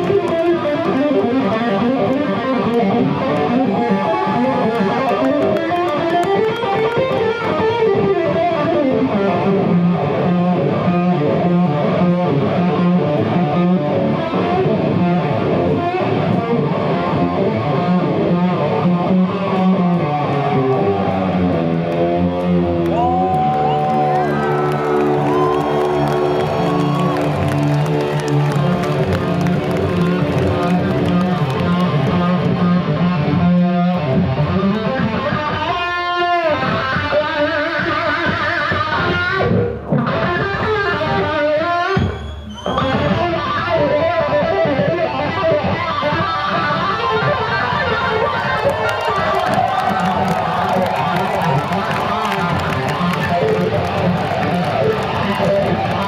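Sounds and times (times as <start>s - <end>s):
live electric lead guitar: 0.0s - 56.0s.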